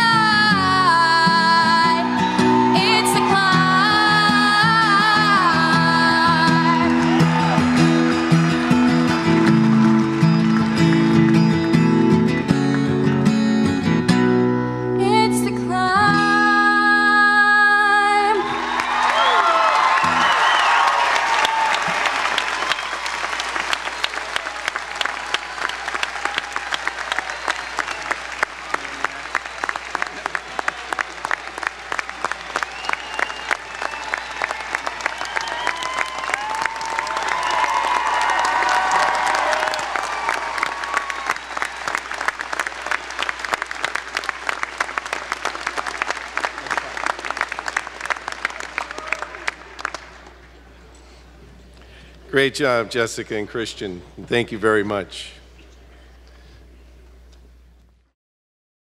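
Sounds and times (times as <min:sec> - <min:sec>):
crowd applauding: 0:00.0 - 0:13.3, 0:18.3 - 0:50.6
people shouting and cheering: 0:01.5 - 0:11.8, 0:18.1 - 0:42.0, 0:48.5 - 0:49.8.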